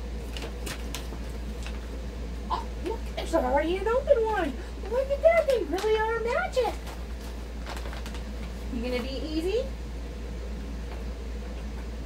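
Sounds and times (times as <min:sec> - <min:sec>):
plastic pouch crinkling: 0:05.2 - 0:08.8.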